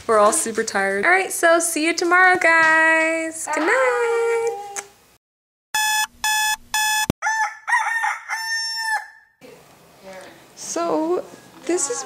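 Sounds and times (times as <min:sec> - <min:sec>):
alarm clock beeping: 0:05.8 - 0:07.1
rooster crowing: 0:07.2 - 0:09.3.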